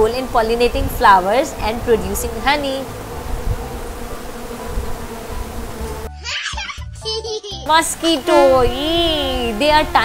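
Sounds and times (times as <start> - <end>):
flying insect buzzing: 0.0 - 6.9, 7.6 - 10.0.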